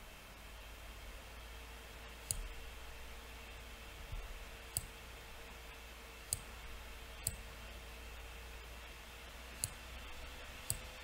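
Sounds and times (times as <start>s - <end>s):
faint steady hum: 0.0s - 11.0s
computer mouse clicks: 2.2s - 2.6s, 7.2s - 7.5s, 9.6s - 9.8s, 10.6s - 11.0s.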